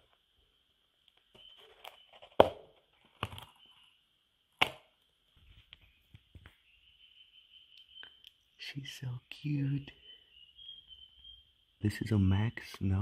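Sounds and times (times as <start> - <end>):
plastic lid snapping: 4.6 - 4.9.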